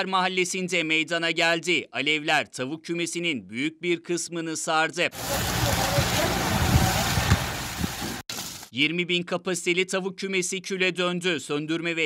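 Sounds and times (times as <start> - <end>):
faint voices: 5.2 - 7.3
fire rushing hiss: 5.2 - 8.7.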